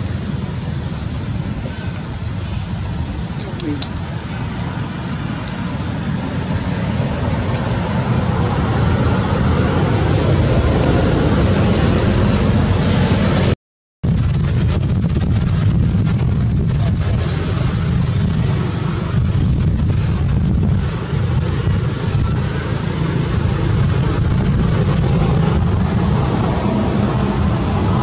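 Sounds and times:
loud low rumble: 0:00.0 - 0:28.0.

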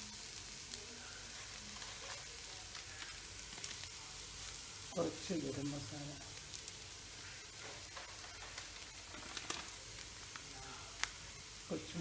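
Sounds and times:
vegetables sizzling in a frying pan: 0:00.0 - 0:12.0.

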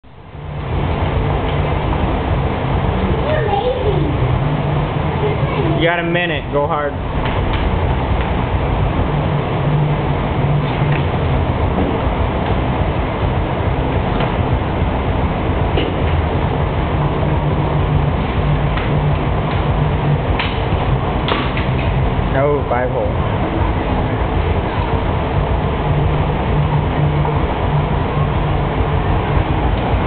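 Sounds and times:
low rumbling noise: 0:00.0 - 0:30.0.

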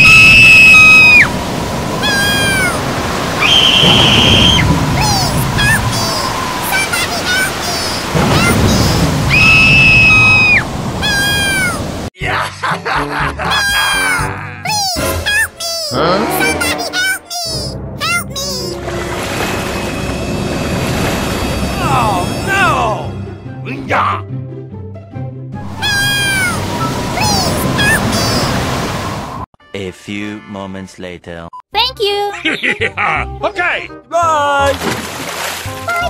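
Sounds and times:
rough sea waves: 0:00.0 - 0:12.1, 0:18.6 - 0:23.0, 0:25.6 - 0:29.5
stormy surf: 0:00.0 - 0:12.1, 0:18.8 - 0:23.0, 0:25.6 - 0:29.5
background music: 0:12.2 - 0:27.6, 0:29.6 - 0:36.0
high-pitched cartoon wailing cry: 0:13.4 - 0:17.6
squeaky meow-like voice effects: 0:25.8 - 0:26.6.

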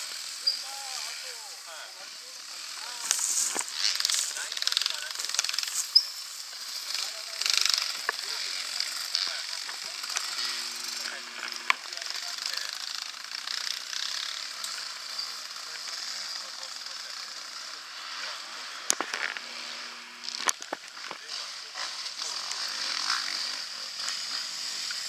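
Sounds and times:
dirt bike engines revving: 0:00.0 - 0:25.0.

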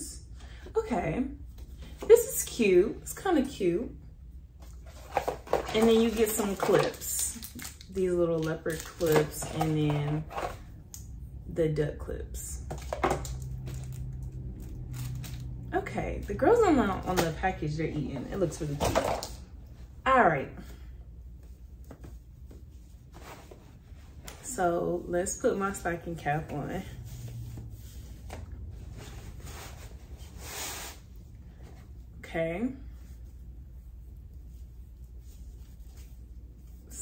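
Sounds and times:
hair being handled: 0:04.6 - 0:10.6
cardboard packaging rustling: 0:04.7 - 0:10.6
fabric cap rustling: 0:21.3 - 0:25.8, 0:26.8 - 0:32.0, 0:33.0 - 0:37.0.

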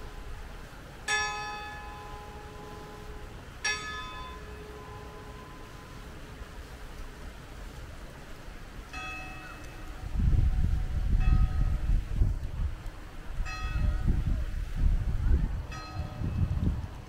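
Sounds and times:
church bell tolling: 0:01.1 - 0:06.0, 0:15.7 - 0:16.4.

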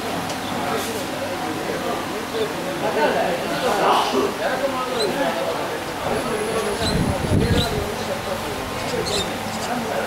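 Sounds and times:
distant indistinct voices calling: 0:03.4 - 0:10.0.

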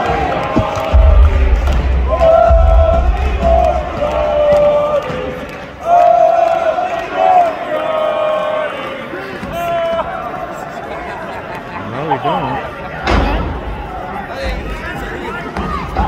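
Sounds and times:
crowd noise: 0:00.0 - 0:16.0
spectators yelling and shouting: 0:00.0 - 0:16.0.

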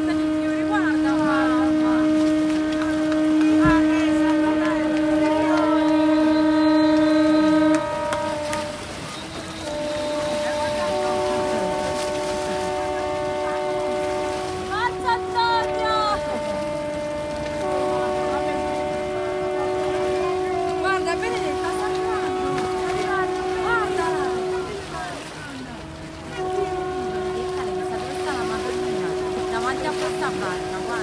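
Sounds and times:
boat horns blasting: 0:00.0 - 0:31.0.

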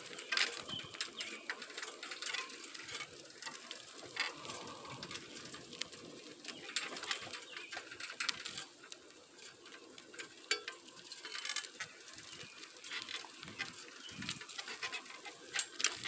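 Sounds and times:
bicycle rattling over asphalt: 0:00.0 - 0:16.0.

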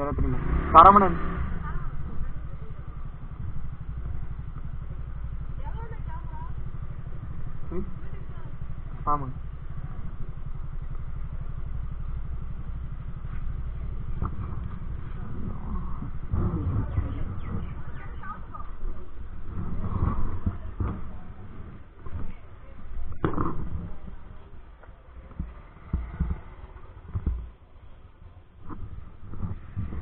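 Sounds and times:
motorcycle engine idling: 0:00.0 - 0:30.0
faint voices of people: 0:01.4 - 0:04.6, 0:05.2 - 0:30.0.

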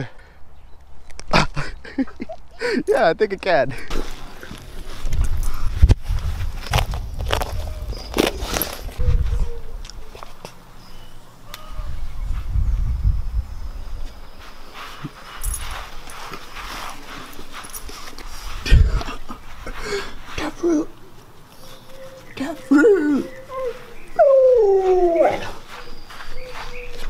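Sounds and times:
camera microphone handling rumble: 0:03.9 - 0:10.6.

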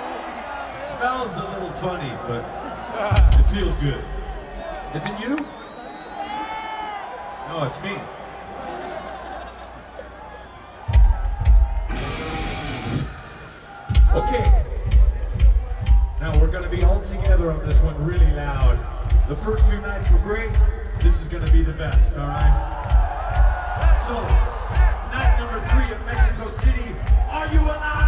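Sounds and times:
crowd cheering and whooping: 0:00.0 - 0:17.1, 0:21.3 - 0:28.0
heavy low drum hits: 0:03.1 - 0:03.8
low beat on sound system: 0:03.1 - 0:04.2, 0:10.9 - 0:11.9, 0:13.9 - 0:28.0.

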